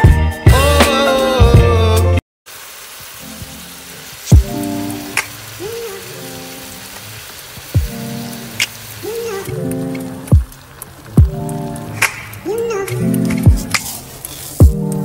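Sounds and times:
vegetables sizzling in pot: 2.5 - 15.0.

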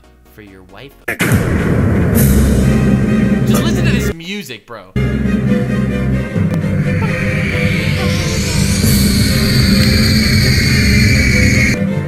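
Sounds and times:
dramatic soundtrack music: 1.2 - 4.2, 5.0 - 12.0
loud rush of noise: 6.5 - 11.8.

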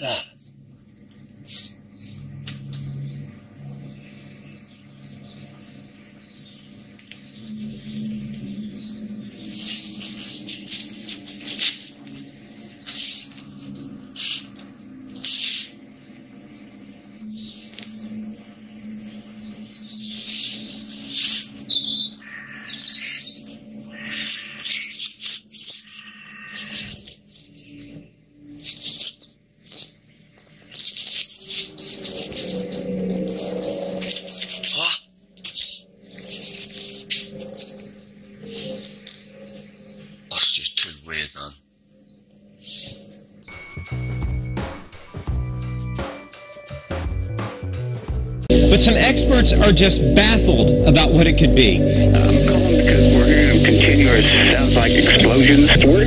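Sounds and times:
low droning hum: 0.0 - 15.2, 48.2 - 56.0
birds chirping: 0.0 - 45.4, 48.5 - 56.0.

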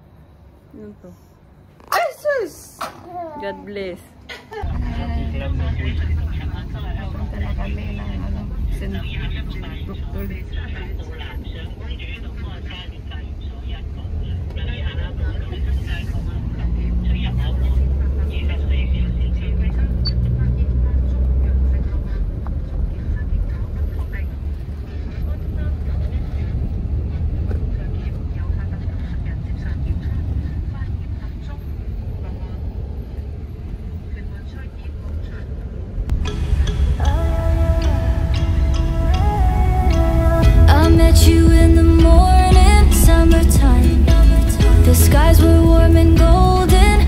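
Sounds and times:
car engine and road rumble: 4.6 - 47.0.

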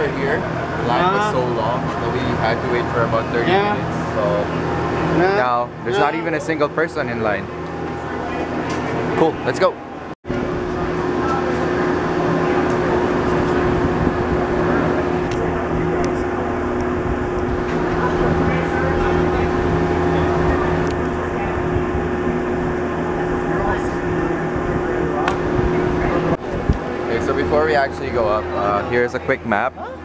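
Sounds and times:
drive machinery humming: 0.0 - 30.0.

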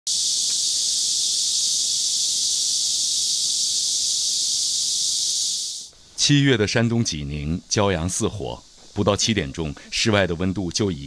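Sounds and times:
cicadas buzzing: 0.0 - 11.0.

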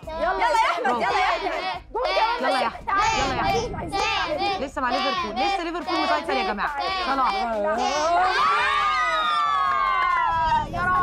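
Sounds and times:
people shouting and cheering: 0.0 - 11.0.

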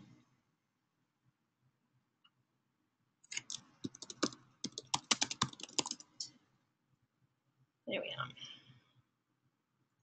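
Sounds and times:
typing on computer keyboard: 3.3 - 6.2.

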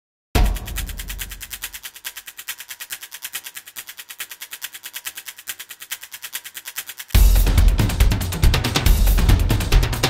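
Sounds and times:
fast high ticking: 0.4 - 10.0.

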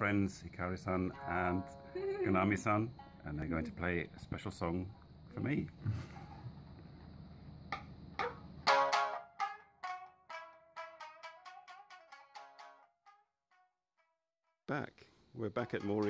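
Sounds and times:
shamisen plucked notes: 1.1 - 3.3, 8.2 - 13.6, 15.6 - 16.0.

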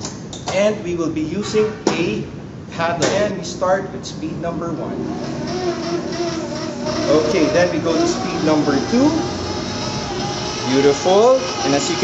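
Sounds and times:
stand mixer motor humming: 5.0 - 12.0.

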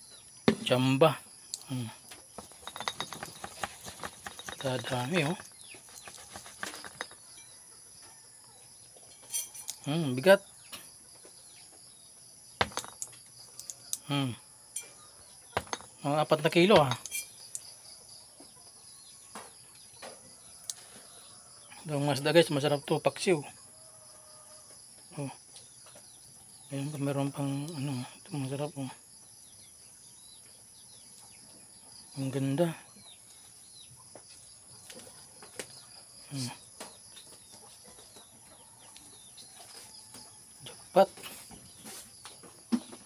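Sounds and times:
insects chirring: 0.0 - 43.0
insect chirring: 0.1 - 8.0, 11.9 - 19.0.

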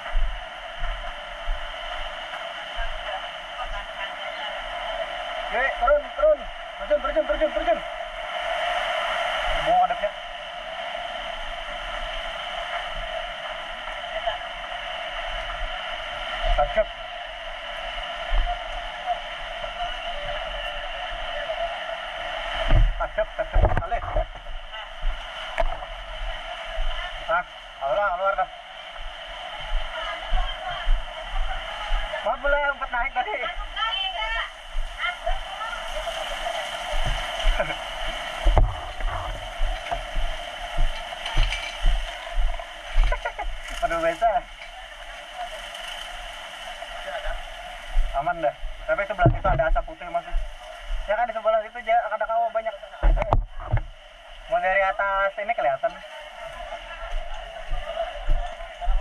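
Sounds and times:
muffled indistinct voices: 0.0 - 59.0
steady hiss: 0.0 - 59.0.

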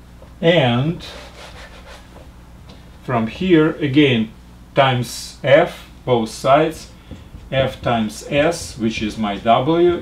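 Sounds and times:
eraser scraping whiteboard: 1.0 - 2.2.

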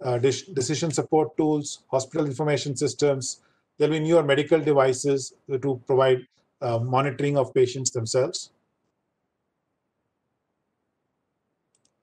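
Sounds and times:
faint steady hiss: 0.0 - 8.6
faint clicks: 11.7 - 12.0.

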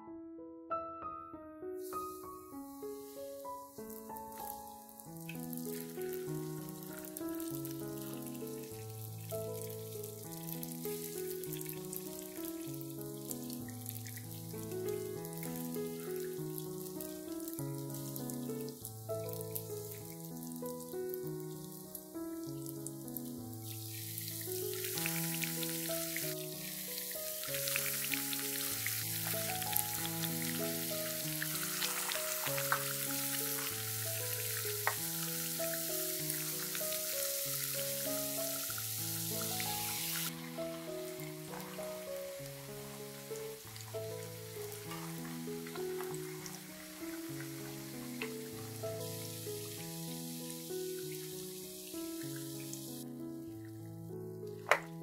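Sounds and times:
background music with simple melody: 0.0 - 55.0
donuts sizzling in hot oil: 1.9 - 53.0.

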